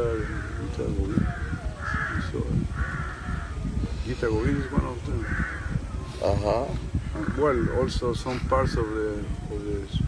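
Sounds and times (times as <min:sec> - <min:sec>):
crows cawing: 0:00.0 - 0:08.2.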